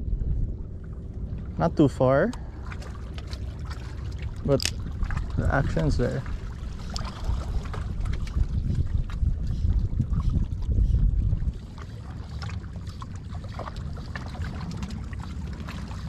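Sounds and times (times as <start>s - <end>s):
wind buffeting microphone: 0.0s - 16.0s
water sloshing against rocks: 1.2s - 16.0s.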